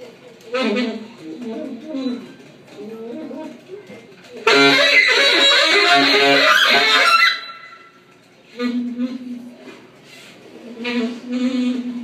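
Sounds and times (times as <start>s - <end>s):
saxophone and drums playing: 0.5s - 1.2s, 4.4s - 7.9s, 10.7s - 12.0s.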